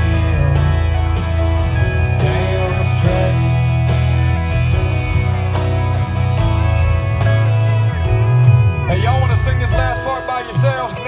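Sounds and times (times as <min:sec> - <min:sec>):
bass line: 0:00.0 - 0:11.0
guitar: 0:00.0 - 0:11.0
live country band: 0:00.0 - 0:11.0.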